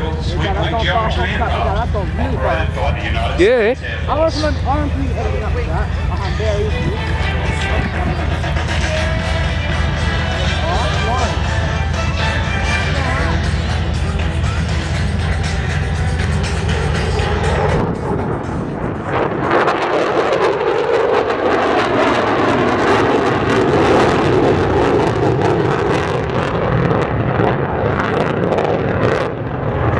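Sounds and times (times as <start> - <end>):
steady music: 0.0 - 20.1
loud rushing jet noise: 0.0 - 29.9.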